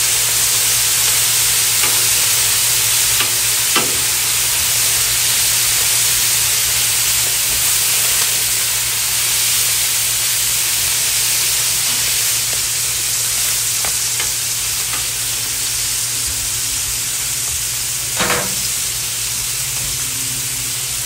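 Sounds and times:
meat sizzling on griddle: 0.0 - 21.0.

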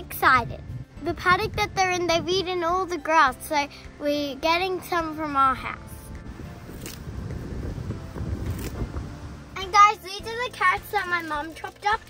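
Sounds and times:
wind buffeting microphone: 0.0 - 3.4, 4.0 - 10.9
grass rustling into cloth bag: 6.4 - 9.2.

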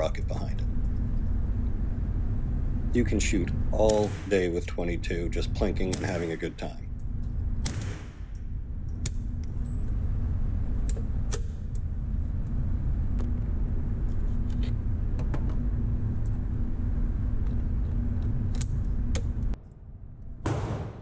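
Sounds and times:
low rumble and hum: 0.0 - 21.0.

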